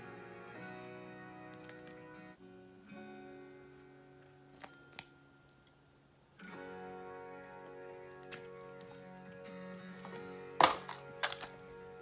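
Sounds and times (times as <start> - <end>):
gentle background music: 0.0 - 12.0.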